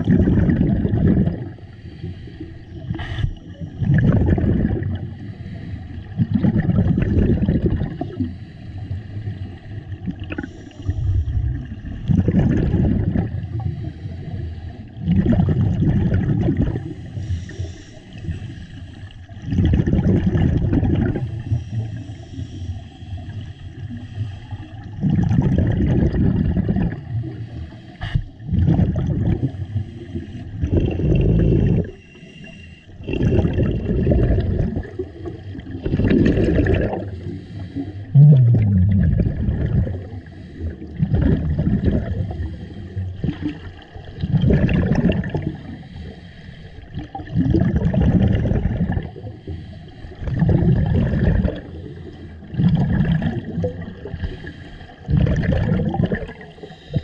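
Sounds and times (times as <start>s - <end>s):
gurgling rush of exhaust bubbles: 0.0s - 1.6s, 2.9s - 5.2s, 6.1s - 8.3s, 9.9s - 13.7s, 15.0s - 17.0s, 19.3s - 21.8s, 24.8s - 27.4s, 28.1s - 29.6s, 30.4s - 32.0s, 33.0s - 37.3s, 38.1s - 45.8s, 46.9s - 49.3s, 50.2s - 54.4s, 55.0s - 57.0s
diver breathing through regulator: 0.9s - 11.8s, 12.5s - 57.0s.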